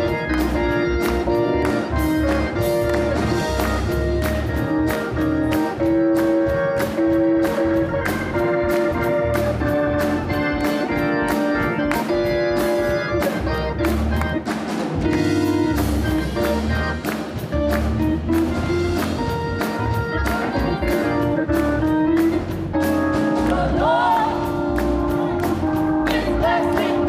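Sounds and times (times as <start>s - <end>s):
hands clapping along: 0.0s - 22.6s, 24.6s - 27.0s
live instrumental church music: 0.0s - 27.0s.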